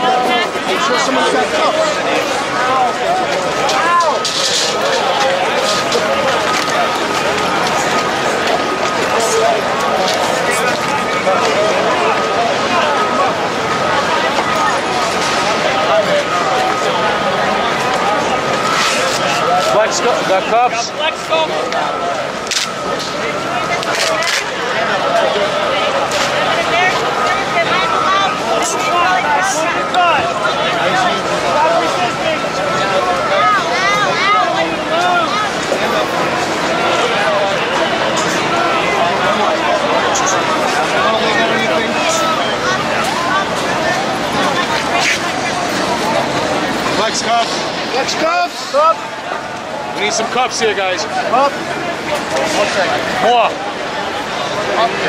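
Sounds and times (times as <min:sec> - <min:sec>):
crowd shouting and talking: 0:00.0 - 0:55.0
many voices shouting: 0:23.2 - 0:50.2.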